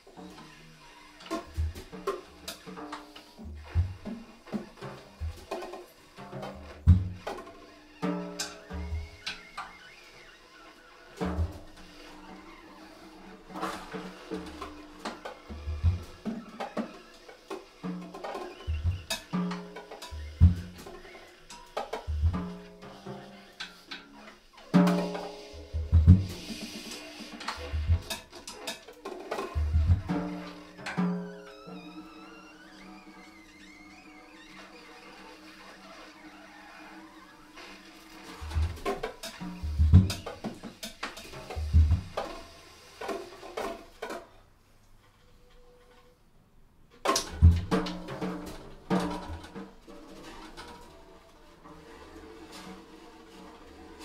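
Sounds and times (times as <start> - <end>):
drum kit strikes: 24.7 - 28.7, 29.5 - 31.2, 38.4 - 42.4.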